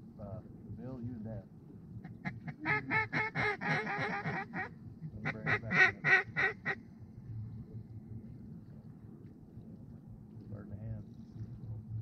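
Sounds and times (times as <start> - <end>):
duck quacking: 2.2 - 6.8.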